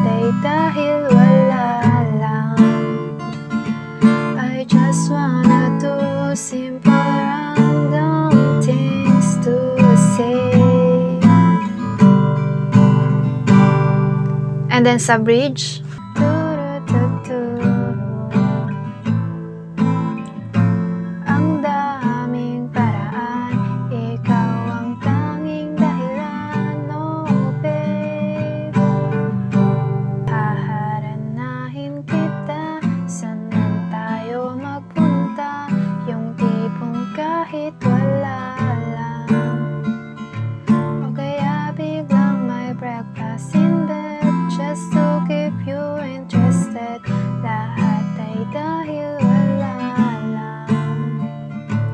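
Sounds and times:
acoustic guitar strumming chords: 0.0 - 51.9.

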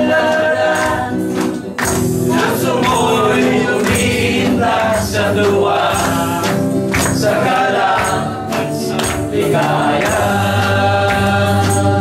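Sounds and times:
man singing: 0.0 - 1.1, 2.3 - 12.0
electric guitar: 0.0 - 12.0
group singing gospel song: 0.0 - 12.0
steady struck beat: 0.8 - 12.0.

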